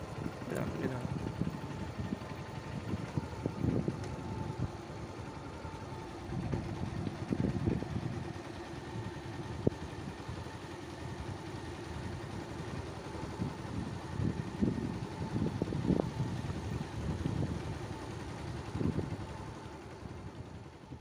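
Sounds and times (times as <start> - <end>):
small engine running: 0.0 - 21.0.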